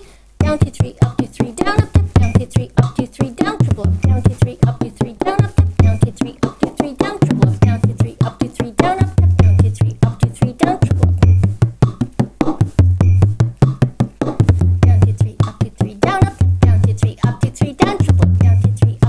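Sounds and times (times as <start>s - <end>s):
backing tune: 0.4s - 19.0s
frame drum played with a stick: 0.4s - 19.0s
low drum boom: 10.8s - 11.9s, 12.6s - 15.3s.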